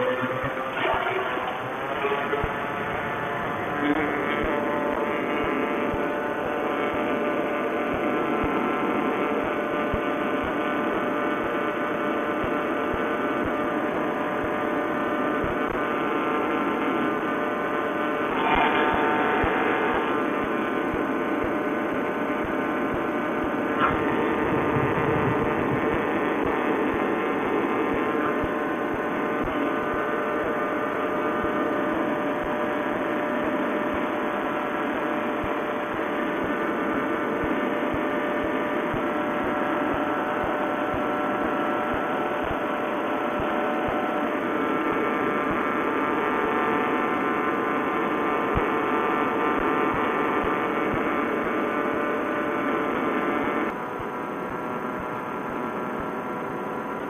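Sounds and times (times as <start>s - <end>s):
paramotor engine drone: 0.0s - 57.0s.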